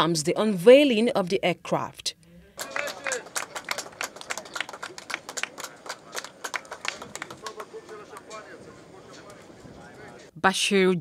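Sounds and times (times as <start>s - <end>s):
faint voices: 2.4s - 10.3s
people clapping: 2.6s - 10.3s.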